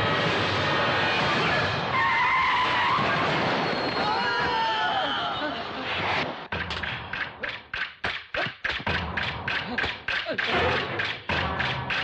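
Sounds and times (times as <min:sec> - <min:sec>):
bus tyres skidding squeal: 0:00.9 - 0:05.8
film background music: 0:06.5 - 0:12.0.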